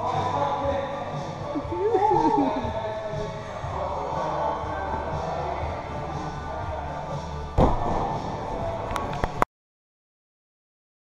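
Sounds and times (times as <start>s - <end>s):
background music: 0.0s - 9.4s.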